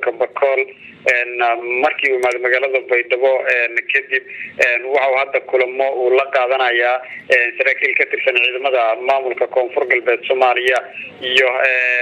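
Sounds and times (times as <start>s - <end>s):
radio-like voice talking: 0.0s - 12.0s.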